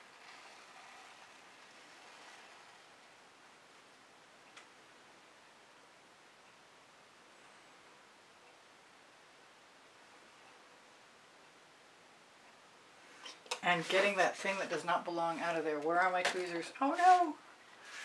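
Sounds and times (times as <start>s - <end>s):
faint handling rustle: 13.0s - 18.0s.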